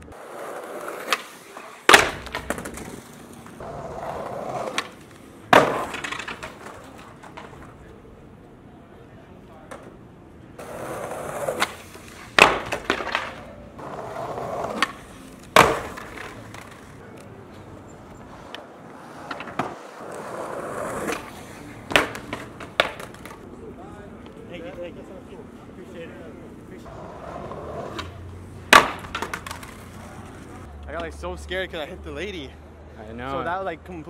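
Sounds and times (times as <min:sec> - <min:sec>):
skateboard cracking on ground: 0:00.0 - 0:07.9, 0:10.6 - 0:17.3, 0:18.3 - 0:23.5, 0:26.9 - 0:30.7
skateboard wheels rolling on stone: 0:00.0 - 0:08.1, 0:10.6 - 0:23.6, 0:26.8 - 0:30.7.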